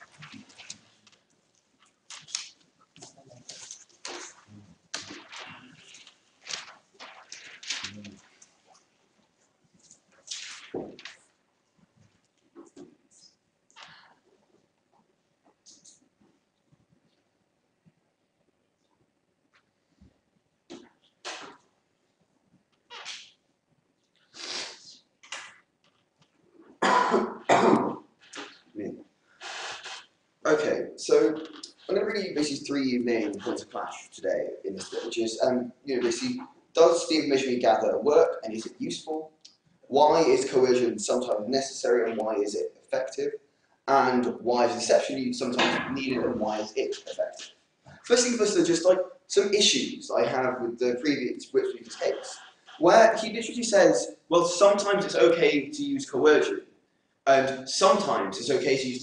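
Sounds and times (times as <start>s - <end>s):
papers and pen handling: 0.0s - 8.9s
man coughing loudly: 26.8s - 28.0s.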